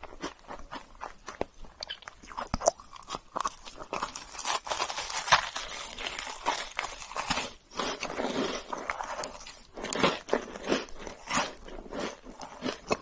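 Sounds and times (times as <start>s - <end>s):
cookie crunching while chewing: 0.0s - 13.0s.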